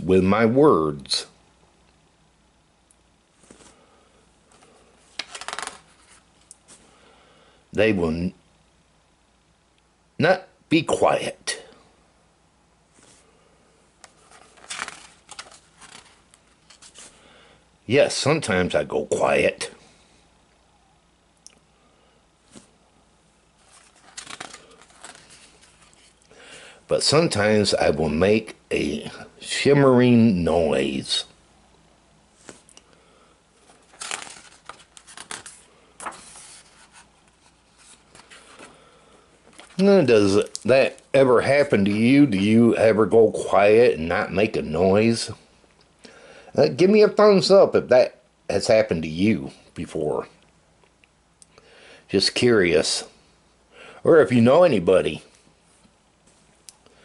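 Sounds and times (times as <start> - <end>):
book page turning: 3.4 - 3.8, 4.5 - 6.8, 14.0 - 17.2, 23.6 - 26.2, 32.4 - 32.7, 33.6 - 38.8, 39.5 - 41.1.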